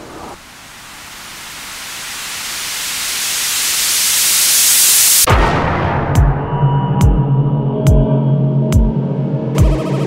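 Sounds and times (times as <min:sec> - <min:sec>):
synthesized white-noise riser: 0:00.0 - 0:05.3, 0:09.3 - 0:10.0.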